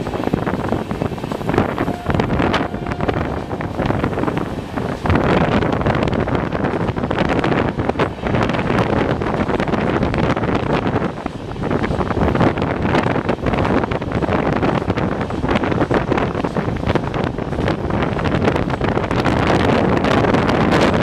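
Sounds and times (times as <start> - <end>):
train wheels on track: 0.0 - 21.0
wind rushing over microphone: 0.0 - 21.0.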